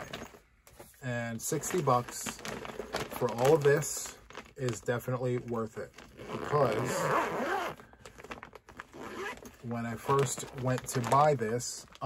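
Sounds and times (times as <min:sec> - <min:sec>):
plastic crinkles and clicks: 0:01.5 - 0:06.2, 0:07.9 - 0:12.0
zip-seal bag pulled open: 0:06.0 - 0:09.5.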